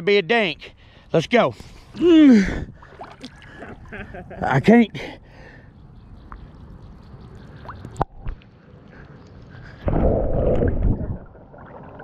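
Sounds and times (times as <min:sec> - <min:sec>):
water sloshing and gurgling: 0:01.6 - 0:04.4, 0:06.0 - 0:12.0.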